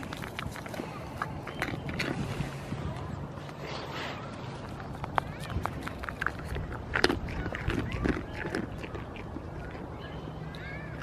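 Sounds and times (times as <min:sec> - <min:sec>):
goat sniffing and snuffling: 0:00.0 - 0:09.9.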